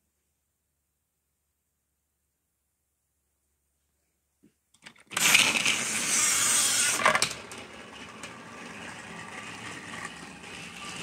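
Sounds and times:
toy train rattling whir: 4.8 - 11.0.

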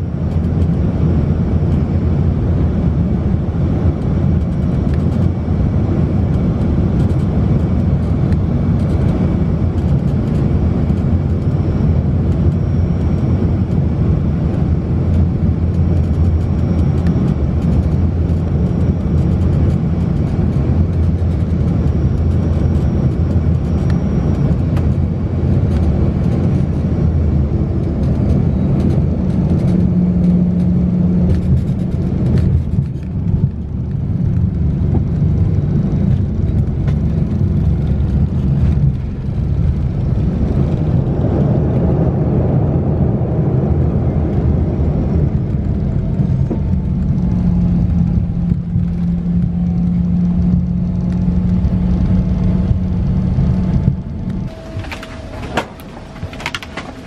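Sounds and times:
airliner cabin noise: 0.0 - 57.0
deep steady hum: 0.0 - 57.0.

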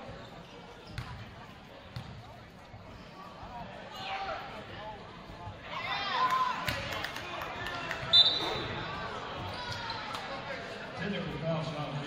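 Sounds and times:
sneaker squeaks: 0.0 - 1.4, 8.0 - 8.8
voices in a gym: 0.0 - 12.0
referee's whistle blast: 8.1 - 8.6.

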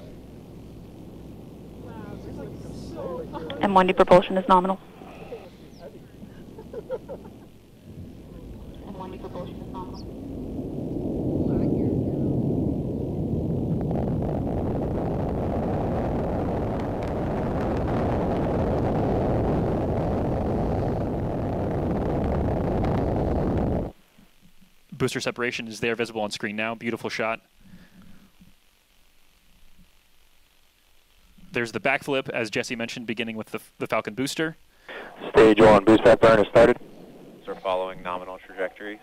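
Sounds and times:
rocket engines roaring: 0.0 - 23.9, 34.9 - 39.0.

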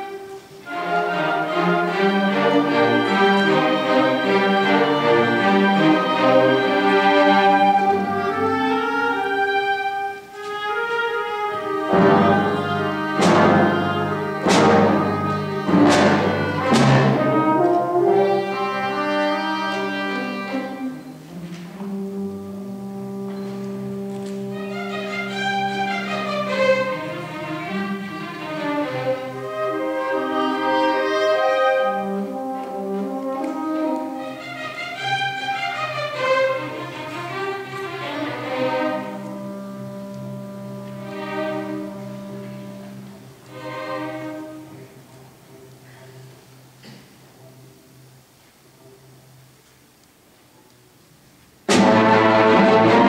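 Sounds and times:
brass: 0.0 - 44.8, 51.7 - 53.0
orchestra holding low chord: 0.0 - 48.1, 51.7 - 53.0.

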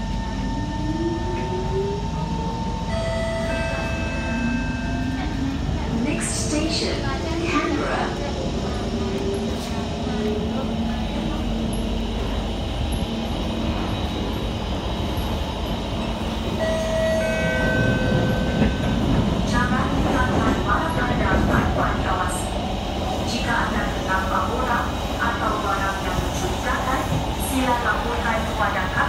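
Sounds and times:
voices: 3.4 - 15.4, 17.2 - 29.0
train wheels rumbling: 5.0 - 29.0.

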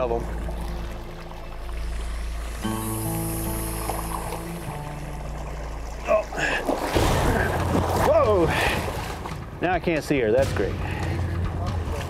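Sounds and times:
background music with drone: 0.0 - 12.0
water splashing and churning: 0.0 - 12.0.

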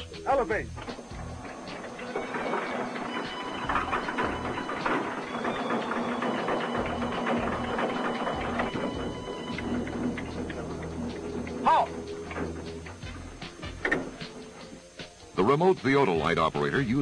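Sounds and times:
mechanical hum: 0.0 - 17.0
fast clatter of clicks: 0.8 - 14.8.

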